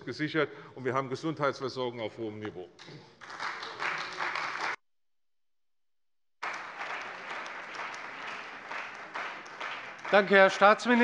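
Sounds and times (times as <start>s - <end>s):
applause: 2.8s - 4.8s, 6.4s - 11.0s.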